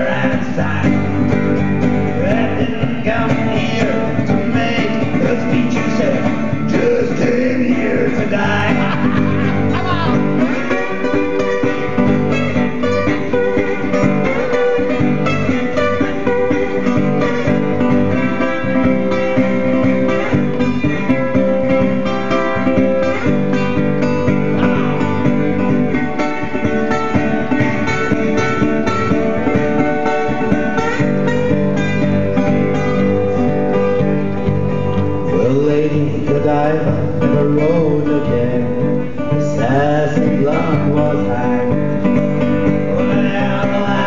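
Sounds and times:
slide guitar blues: 0.0s - 44.0s.

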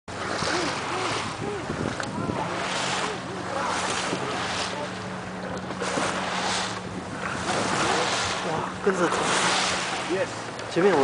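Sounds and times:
wind buffeting microphone: 0.1s - 10.6s
boat motor humming: 0.1s - 11.0s
water washing against hull: 0.1s - 11.0s.

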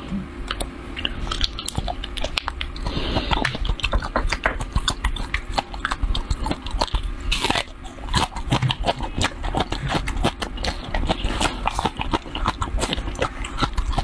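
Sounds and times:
chewing and biting food: 0.4s - 14.0s.

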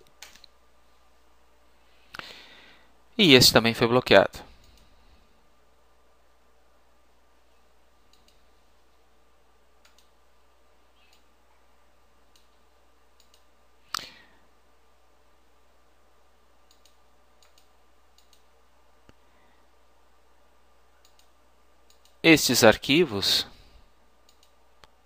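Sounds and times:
computer mouse clicks: 0.0s - 0.6s, 4.6s - 4.9s, 8.1s - 8.4s, 9.8s - 10.2s, 11.0s - 11.3s, 12.3s - 12.6s, 13.2s - 14.1s, 16.6s - 18.5s, 21.0s - 22.2s, 24.2s - 25.0s
low steady hum: 0.0s - 25.0s.

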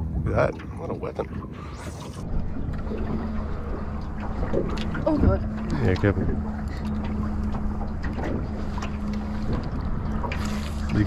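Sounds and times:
steady low hum: 0.0s - 11.0s
water against hull: 0.0s - 11.0s.

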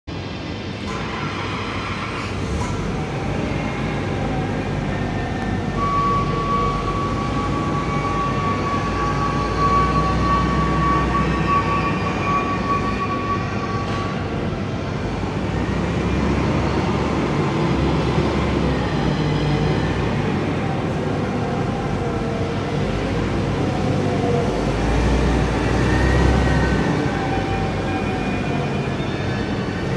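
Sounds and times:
forklift engine rumbling: 14.2s - 29.9s.

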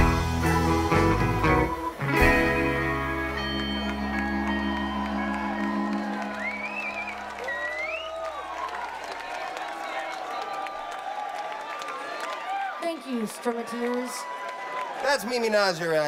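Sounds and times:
crowd applauding and cheering: 0.0s - 16.0s
rising shouts: 3.8s - 15.1s.

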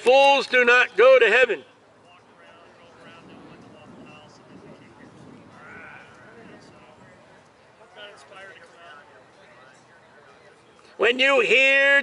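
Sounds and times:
people talking in the street: 0.0s - 12.0s.

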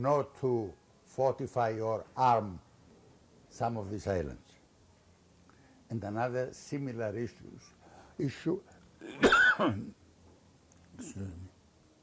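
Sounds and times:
man coughing: 9.0s - 10.0s.

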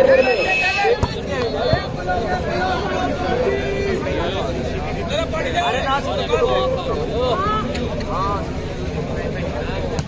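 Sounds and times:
people calling out: 0.0s - 4.2s.

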